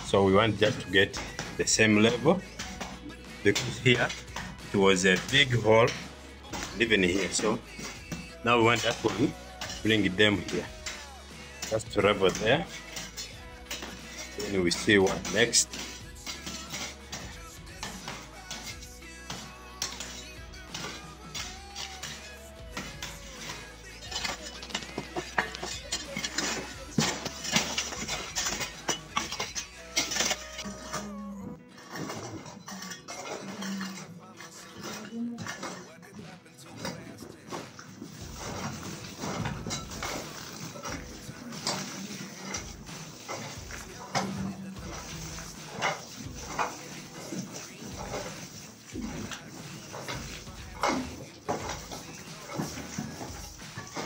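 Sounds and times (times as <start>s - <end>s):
people's voices: 0.0s - 17.2s
hoes chopping and scraping soil: 0.0s - 31.1s, 31.9s - 54.0s.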